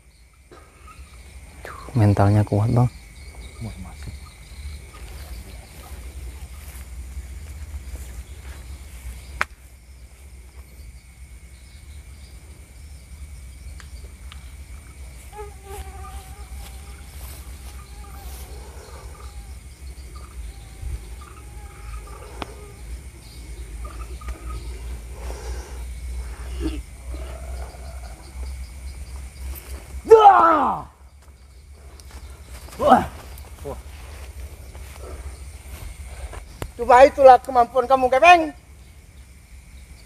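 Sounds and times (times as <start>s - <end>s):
insects calling: 0.0s - 40.0s.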